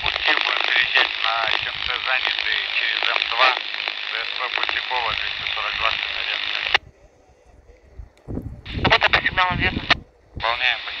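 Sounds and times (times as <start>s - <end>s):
radio squelch noise burst: 0.0s - 7.2s, 8.6s - 11.0s
hissy radio voice transmission: 0.0s - 7.8s, 8.6s - 11.0s.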